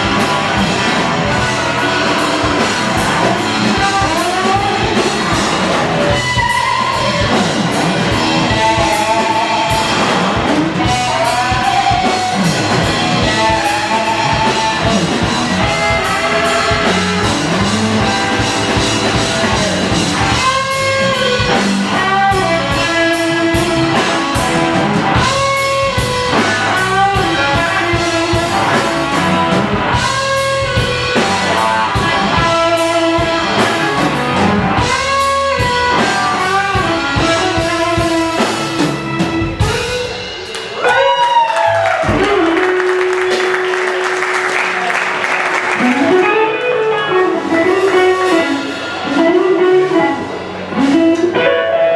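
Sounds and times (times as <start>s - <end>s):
bass guitar: 0.0s - 51.9s
drum kit: 0.0s - 51.9s
electric guitar melodic phrases: 0.0s - 51.9s.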